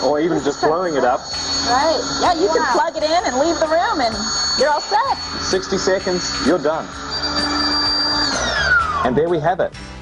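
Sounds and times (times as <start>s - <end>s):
electric air pump whining: 0.0s - 9.3s.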